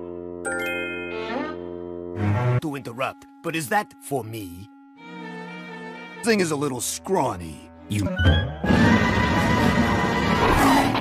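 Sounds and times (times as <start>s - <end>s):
cartoon music: 0.5s - 5.4s, 6.2s - 10.0s
cartoon lion roar: 10.3s - 11.0s.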